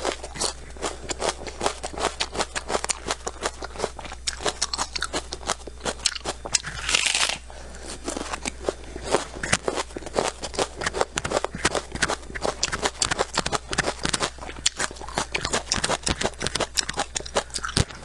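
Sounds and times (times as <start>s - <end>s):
crunching of onion being chewed: 0.0s - 18.0s.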